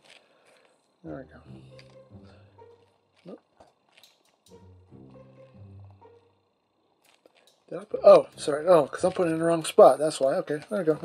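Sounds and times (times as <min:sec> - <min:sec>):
faint background music: 0:00.8 - 0:11.0.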